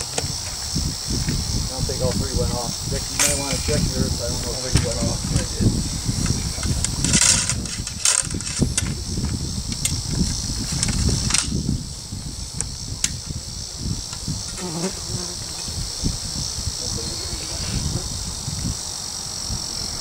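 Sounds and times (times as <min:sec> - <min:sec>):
high-pitched insect chorus: 0:00.0 - 0:20.0.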